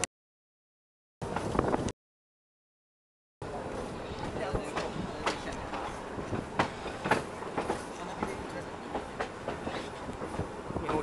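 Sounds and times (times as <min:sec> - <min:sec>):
train running noise: 0:01.2 - 0:01.9, 0:03.4 - 0:11.0.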